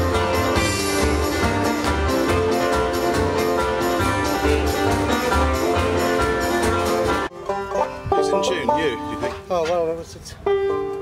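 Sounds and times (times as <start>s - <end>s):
drum kit beating: 0.0s - 9.4s
banjo being picked: 0.0s - 11.0s
string band playing live: 0.0s - 11.0s.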